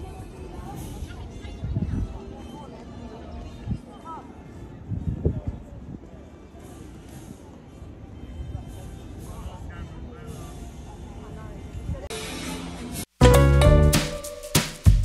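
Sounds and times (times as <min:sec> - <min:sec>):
faint voices of people talking: 0:00.0 - 0:13.0
open-air background noise: 0:00.0 - 0:14.8.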